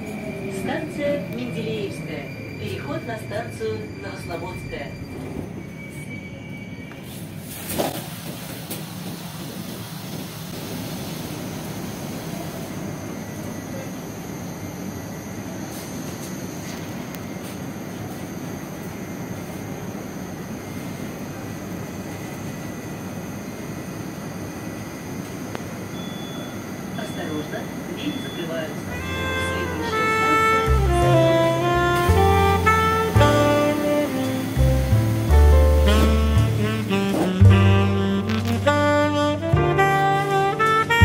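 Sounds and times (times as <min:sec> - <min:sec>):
metro train car interior noise: 0:00.0 - 0:41.0.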